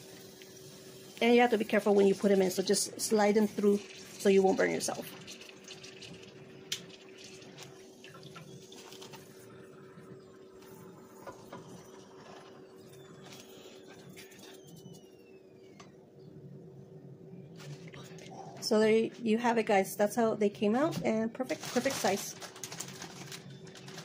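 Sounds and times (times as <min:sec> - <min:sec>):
hot oil sizzling and crackling: 0:00.0 - 0:09.5
steady low hum: 0:06.0 - 0:21.5.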